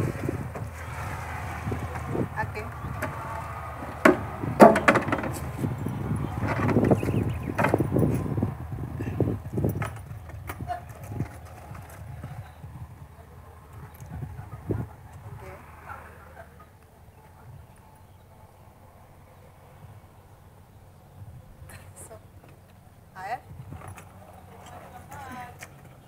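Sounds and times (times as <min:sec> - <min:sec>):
steady low rumble: 0:00.0 - 0:24.6
hollow knocks and clatter: 0:03.8 - 0:05.7, 0:06.4 - 0:08.2.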